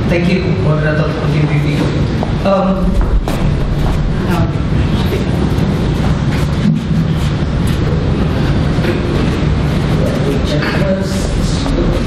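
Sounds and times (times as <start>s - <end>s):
low rumble: 2.0s - 10.3s.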